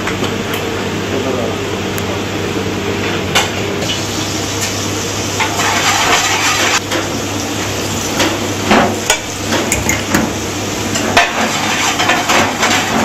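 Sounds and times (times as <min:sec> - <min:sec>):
frying sizzle: 0:03.3 - 0:13.0
utensils scraping frying pans: 0:05.4 - 0:07.1, 0:10.9 - 0:13.0.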